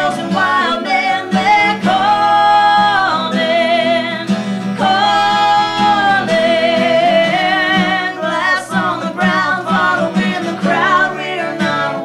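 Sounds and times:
acoustic guitar: 0:00.0 - 0:12.0
woman singing with vibrato: 0:00.0 - 0:12.0.

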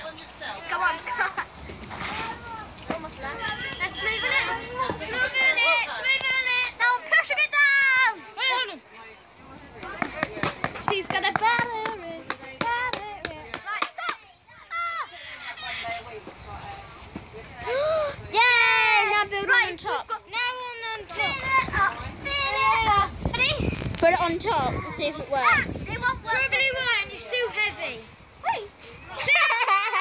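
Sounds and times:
young children chattering: 0:00.0 - 0:30.0.

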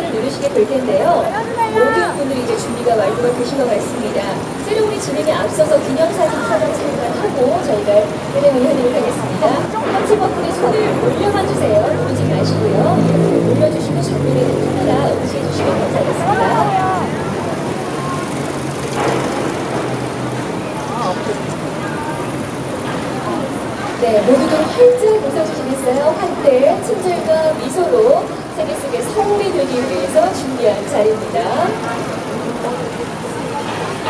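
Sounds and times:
faint indistinct voices: 0:00.0 - 0:34.0
traffic hum: 0:00.0 - 0:34.0.

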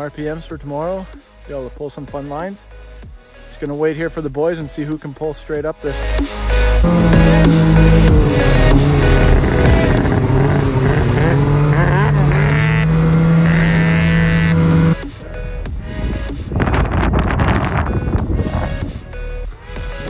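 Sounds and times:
electronic music: 0:06.5 - 0:20.0
rough noise: 0:06.7 - 0:19.2
snowmobile engines running: 0:06.8 - 0:15.0.

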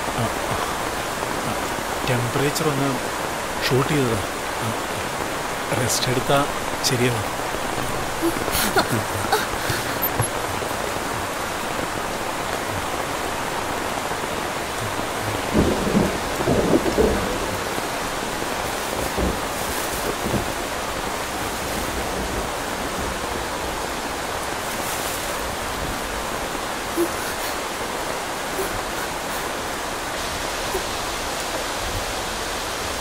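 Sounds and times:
heavy rain falling: 0:00.0 - 0:33.0
thunder rumbling: 0:04.2 - 0:24.5.

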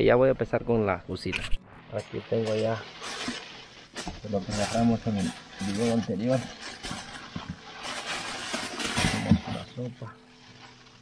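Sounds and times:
plastic bag rustling: 0:02.2 - 0:11.0.

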